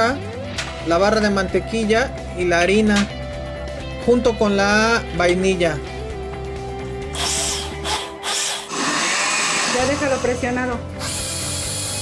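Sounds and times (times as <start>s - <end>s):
blender motor grinding: 7.1s - 12.0s.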